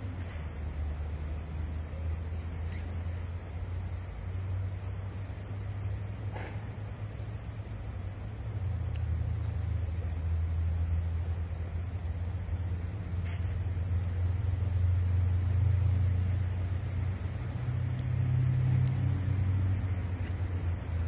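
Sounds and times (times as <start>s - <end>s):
low mechanical rumble: 0.0s - 21.0s.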